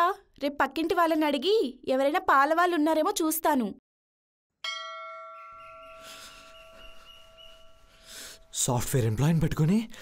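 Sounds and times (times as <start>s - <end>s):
bell-like chime ringing: 4.6s - 8.7s.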